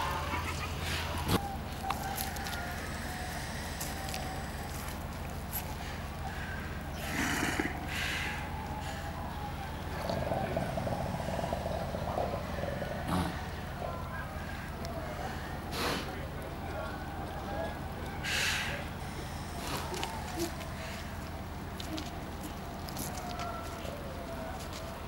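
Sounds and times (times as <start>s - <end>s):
seals calling: 0.0s - 25.0s
breathy hisses: 2.8s - 16.2s, 18.2s - 21.4s.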